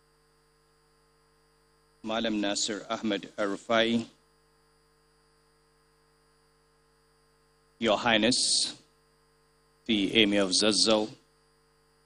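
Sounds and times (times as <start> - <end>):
faint electrical hum: 0.0 - 12.0
man speaking: 2.0 - 4.1, 7.8 - 8.8, 9.9 - 11.2.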